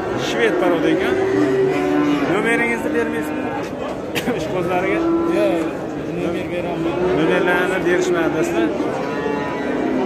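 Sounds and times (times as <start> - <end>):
cattle mooing: 0.0 - 3.7, 4.6 - 10.0.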